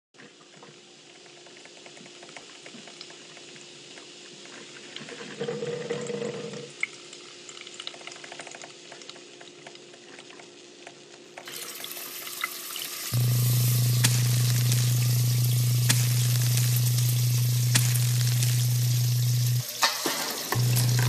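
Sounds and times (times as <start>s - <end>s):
kettle crackling hiss: 0.2s - 5.6s, 6.6s - 21.0s
loud low hum: 13.2s - 19.6s, 20.6s - 21.0s.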